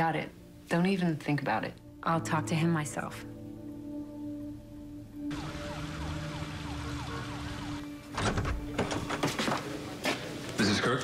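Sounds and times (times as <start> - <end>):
city hum: 5.1 - 10.7
distant emergency siren: 5.2 - 8.2.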